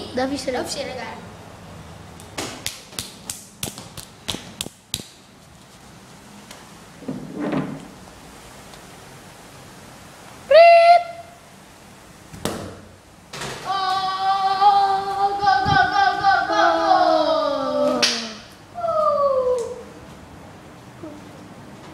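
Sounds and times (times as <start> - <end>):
sharp slaps: 2.2 - 5.2, 12.4 - 12.9, 18.0 - 18.5
child shouting: 13.7 - 19.9.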